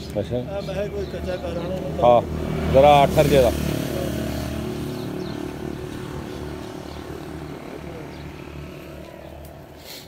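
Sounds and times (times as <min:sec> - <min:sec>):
vehicle engine droning: 0:00.4 - 0:10.0.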